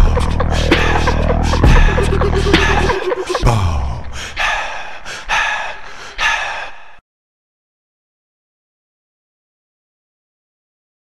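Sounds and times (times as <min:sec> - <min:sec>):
loud breathy gasps: 0:03.5 - 0:07.0.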